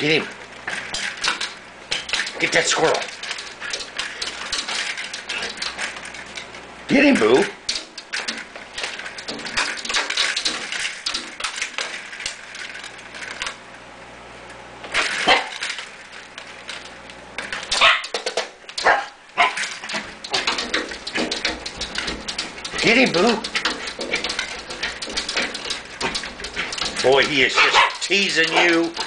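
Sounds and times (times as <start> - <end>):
window blinds clattering: 0.0 - 13.6, 14.9 - 29.0.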